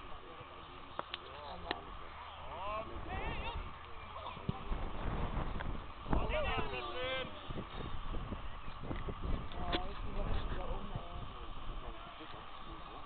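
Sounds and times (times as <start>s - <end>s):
steady low rumble: 1.6s - 13.0s
players shouting: 2.0s - 4.8s.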